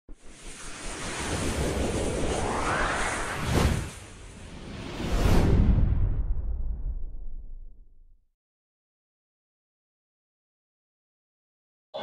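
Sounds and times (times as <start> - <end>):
whoosh rush of noise: 0.2 - 7.5.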